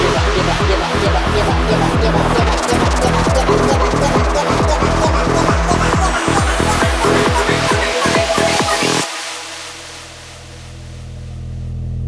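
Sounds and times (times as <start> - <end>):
wash of noise: 0.0 - 11.3
low synth drone: 0.0 - 12.0.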